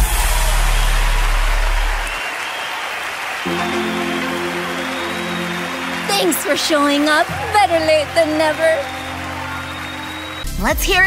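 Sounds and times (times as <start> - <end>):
crowd cheering and applause: 0.0 - 11.0
soft sustained chord: 3.5 - 10.3.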